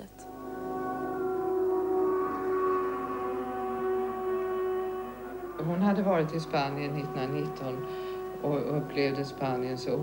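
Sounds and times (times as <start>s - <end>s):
air-raid siren wailing in two tones: 0.3s - 10.0s.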